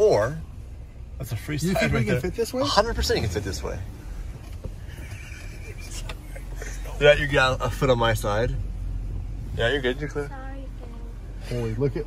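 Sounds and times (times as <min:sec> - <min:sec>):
engine and tyres rumbling: 0:00.0 - 0:12.0.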